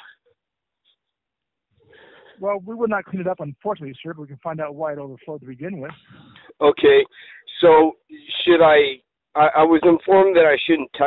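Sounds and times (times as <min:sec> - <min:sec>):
person's voice: 0:02.4 - 0:11.0.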